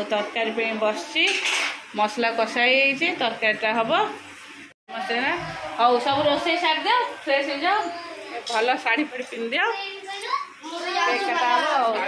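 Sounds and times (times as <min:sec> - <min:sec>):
pots and utensils clinking: 0:00.0 - 0:02.0.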